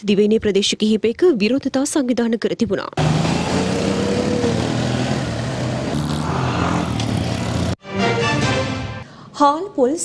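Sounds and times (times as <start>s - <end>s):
roadside traffic noise: 3.0s - 7.8s.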